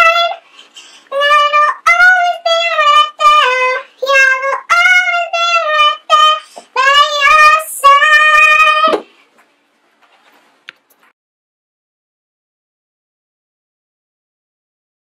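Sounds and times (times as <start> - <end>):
girl singing unaccompanied: 0.0 - 9.2.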